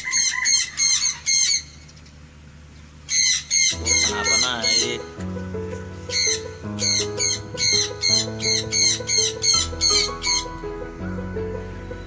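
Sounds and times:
cockatoo squawking: 3.1s - 5.1s, 6.1s - 10.6s
slow low background music: 3.7s - 12.0s.

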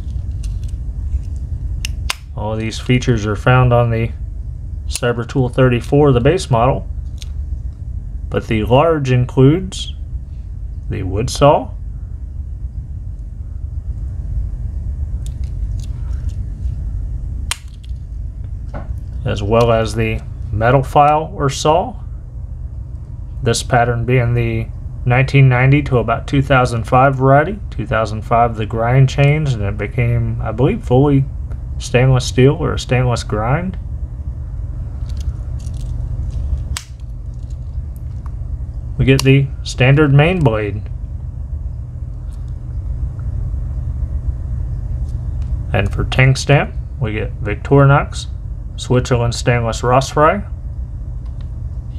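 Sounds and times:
steady low hum: 0.0s - 51.9s
sharp snap: 1.8s - 2.4s, 17.5s - 18.0s, 36.7s - 37.0s.

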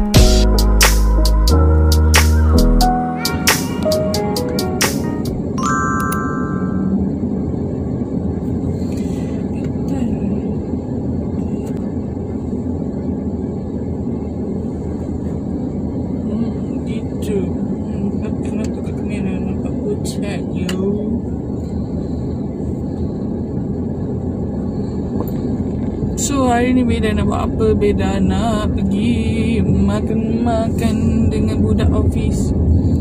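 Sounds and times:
electronic alert tone: 5.6s - 7.2s.

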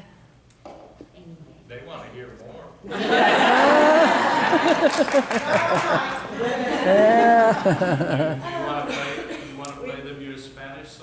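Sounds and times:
audience laughing: 2.9s - 9.6s.

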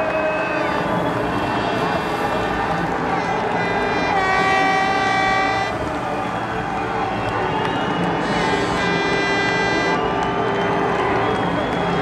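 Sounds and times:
crowd noise: 0.0s - 12.0s
air horns blowing: 0.3s - 6.0s, 8.0s - 10.1s.

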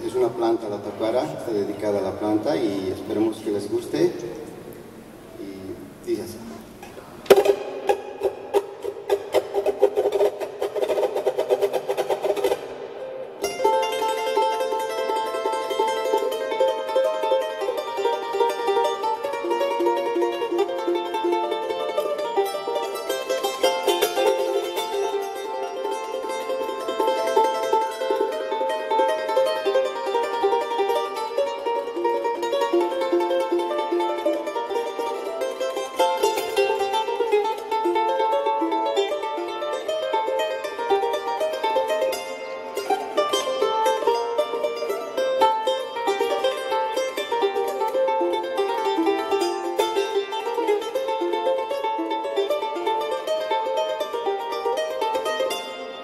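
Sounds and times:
charango strumming and plucking: 0.0s - 56.0s.

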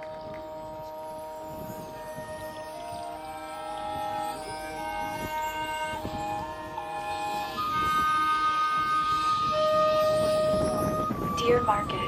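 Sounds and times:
brass held notes: 0.0s - 12.0s.

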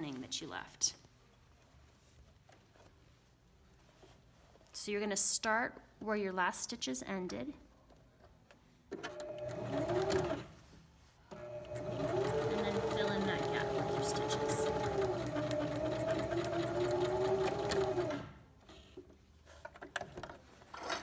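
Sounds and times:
sewing machine stitching: 8.9s - 10.6s, 11.3s - 18.4s.

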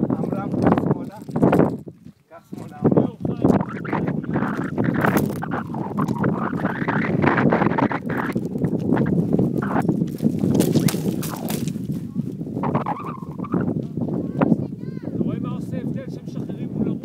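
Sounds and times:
footsteps on stony ground: 0.0s - 14.4s
wind rumbling on microphone: 0.0s - 17.0s.

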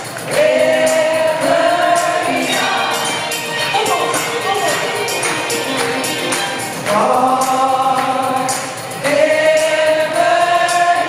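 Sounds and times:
percussion ticking: 0.0s - 11.0s
rock band with violins: 2.6s - 6.8s.

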